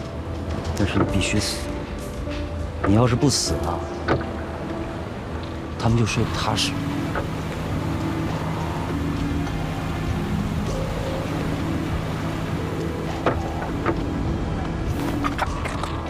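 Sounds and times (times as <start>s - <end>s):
low sustained music: 0.0s - 16.0s
boat engine running: 6.2s - 16.0s.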